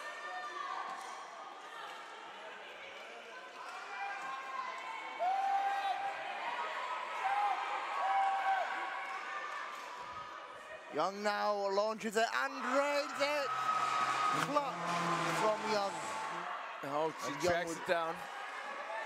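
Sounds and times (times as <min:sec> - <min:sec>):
murmur of crowd and players: 0:00.0 - 0:19.0.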